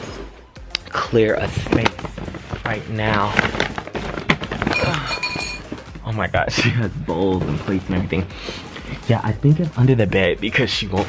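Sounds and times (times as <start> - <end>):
bowls and plates clinking: 4.6 - 5.9.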